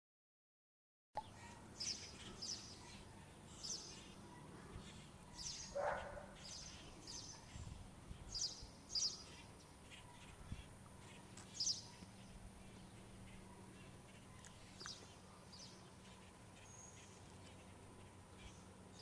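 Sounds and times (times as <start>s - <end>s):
birds chirping: 1.2s - 19.0s
faint steady background noise: 1.2s - 19.0s.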